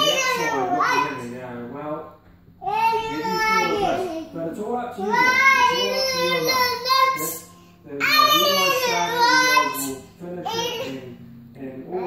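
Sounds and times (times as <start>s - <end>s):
girl singing: 5.0s - 11.0s.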